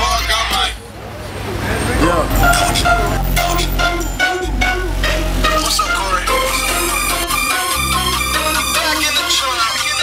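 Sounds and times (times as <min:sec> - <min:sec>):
men talking: 0:00.0 - 0:03.8
street noise: 0:00.0 - 0:10.0
low rumble: 0:00.9 - 0:09.2.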